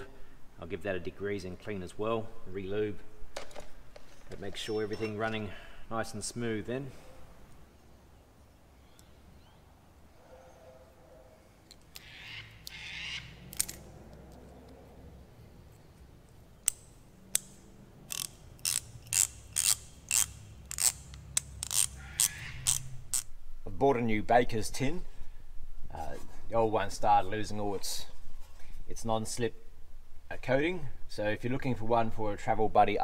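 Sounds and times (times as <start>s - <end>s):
metal parts scraping: 18.1s - 23.3s
ratchet pawl clicking: 18.1s - 23.3s.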